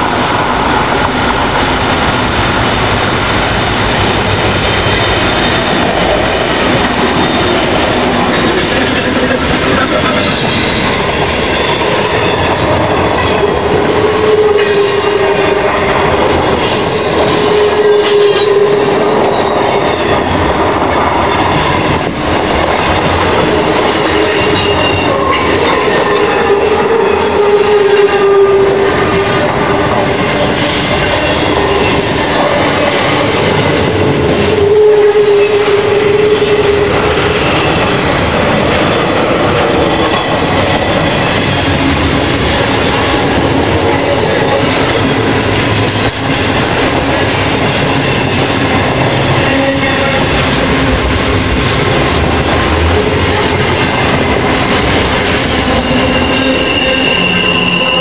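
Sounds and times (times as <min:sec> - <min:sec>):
freight train rumbling past: 0:00.0 - 0:58.0
train wheels clickety-clack: 0:00.0 - 0:58.0
train wheels squealing: 0:16.6 - 0:20.3, 0:24.2 - 0:33.8, 0:55.4 - 0:58.0.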